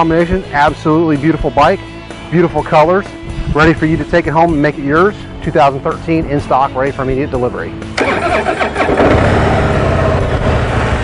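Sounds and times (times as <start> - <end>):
motorcycle engine starting and revving: 7.8 - 11.0.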